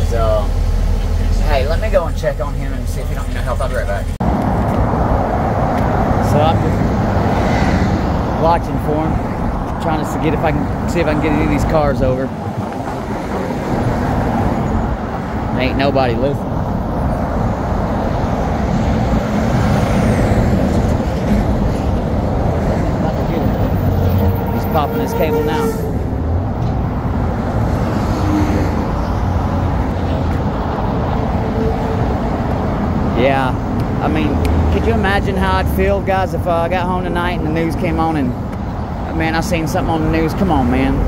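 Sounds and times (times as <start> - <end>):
highway traffic passing: 0.0 - 41.0.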